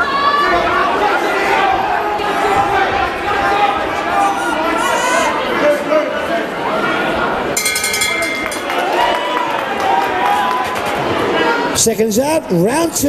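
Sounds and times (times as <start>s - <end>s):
crowd chatter and shouting: 0.0s - 13.0s
boxing ring bell: 7.6s - 9.2s.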